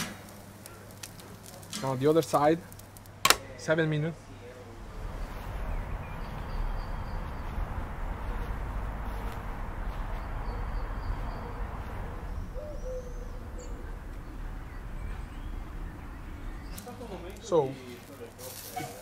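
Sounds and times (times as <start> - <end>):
low rumble: 4.6 - 16.9
bird cooing: 10.4 - 15.8.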